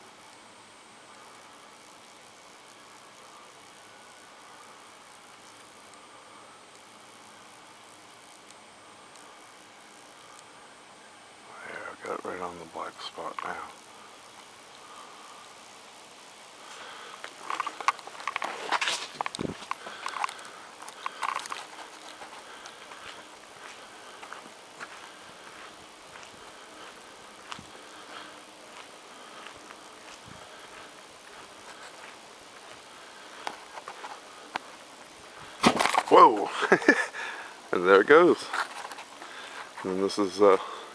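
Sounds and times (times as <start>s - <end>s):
outdoor background hiss: 0.0s - 40.9s
camera handling rustles and clicks: 17.2s - 22.4s.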